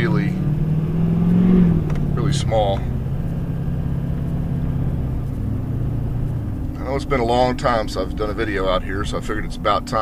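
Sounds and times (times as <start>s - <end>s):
engine drone: 0.0s - 10.0s
road rumble: 0.0s - 10.0s.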